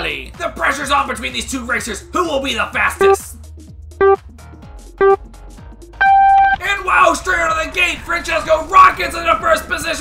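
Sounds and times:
countdown beeps: 4.0 - 4.2, 5.0 - 5.2, 6.0 - 6.6.

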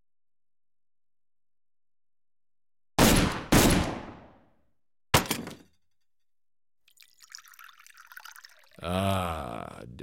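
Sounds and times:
echoing gunshots: 3.0 - 4.4.

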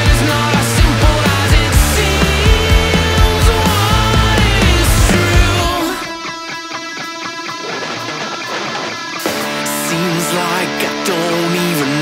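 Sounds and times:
electric guitar picking: 0.0 - 12.0
rock band playing: 0.0 - 12.0.

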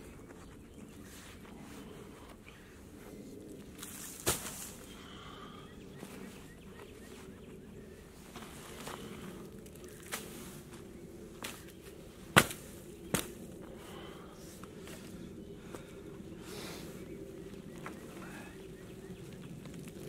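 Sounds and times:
boots stepping on dry leaves: 3.8 - 4.9.

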